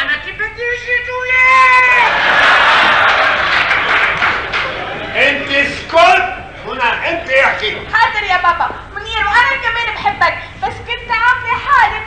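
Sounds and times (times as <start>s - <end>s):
audience applauding: 2.0s - 5.2s.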